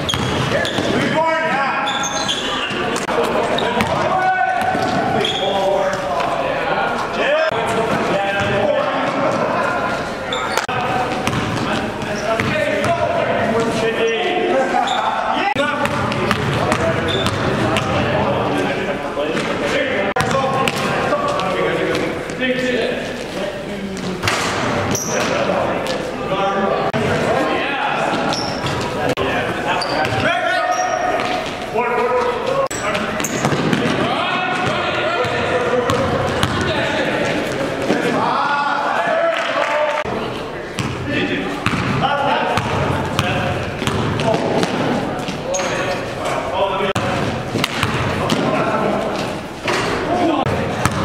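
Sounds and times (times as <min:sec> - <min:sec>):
basketball bouncing: 0:00.0 - 0:01.0, 0:03.8 - 0:05.1, 0:10.8 - 0:13.1, 0:15.8 - 0:18.0, 0:20.2 - 0:21.4, 0:33.0 - 0:36.7, 0:40.8 - 0:41.0, 0:41.6 - 0:42.0, 0:42.6 - 0:45.4, 0:47.0 - 0:48.6, 0:50.5 - 0:51.0
basketball hitting the rim: 0:00.0 - 0:01.0, 0:03.8 - 0:05.1, 0:10.8 - 0:13.8, 0:15.8 - 0:18.0, 0:33.0 - 0:36.7, 0:41.6 - 0:42.0, 0:42.6 - 0:45.8, 0:47.0 - 0:48.6, 0:50.8 - 0:51.0
sneaker squeaks: 0:00.0 - 0:06.0, 0:09.2 - 0:13.0, 0:13.6 - 0:15.3, 0:16.3 - 0:17.9, 0:24.0 - 0:26.1, 0:28.0 - 0:29.0, 0:29.7 - 0:33.9, 0:42.6 - 0:46.2
players calling out: 0:00.0 - 0:51.0.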